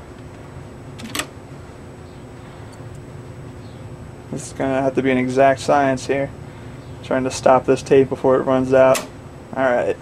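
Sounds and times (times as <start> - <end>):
tape deck key click: 8.9 - 9.1.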